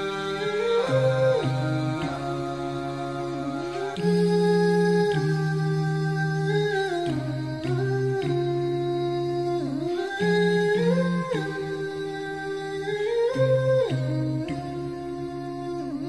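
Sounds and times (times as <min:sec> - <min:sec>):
hummed vocal melody: 0:00.0 - 0:16.0.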